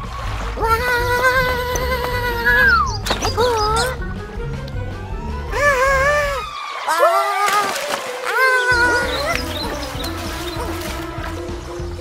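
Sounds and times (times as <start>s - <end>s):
background music: 0.0s - 12.0s
wavering vocal sound: 0.6s - 4.0s, 5.5s - 11.2s
cartoon character crying out: 5.5s - 9.4s.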